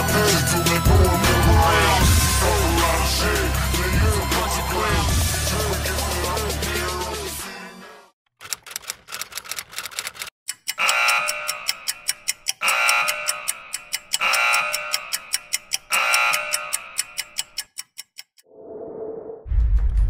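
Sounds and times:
clock-like ticking: 8.4 - 18.4.

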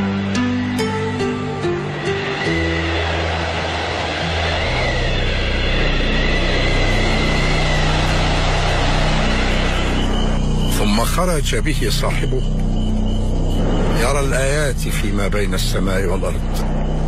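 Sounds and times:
rushing noise: 0.0 - 11.6.

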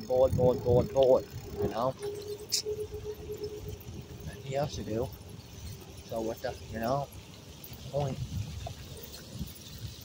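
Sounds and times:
faint steady hum: 0.0 - 7.7
road rumble: 0.0 - 10.0
wind: 0.0 - 10.0.

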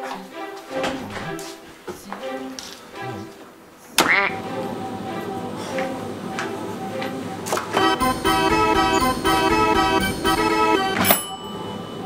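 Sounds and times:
comic squawk sound effect: 4.0 - 5.2
music with held notes: 4.3 - 12.0.

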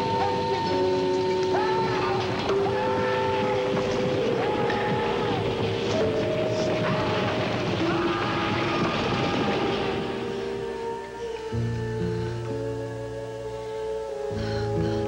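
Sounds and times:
building collapsing rubble falling: 0.0 - 11.1
sustained music notes: 0.0 - 15.0.

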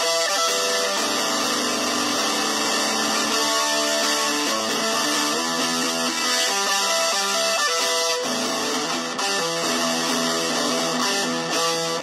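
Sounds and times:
electric guitar riff: 0.0 - 12.0.

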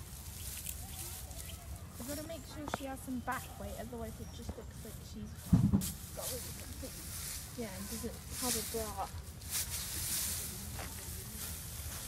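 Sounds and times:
dry straw rustling: 0.0 - 12.0.

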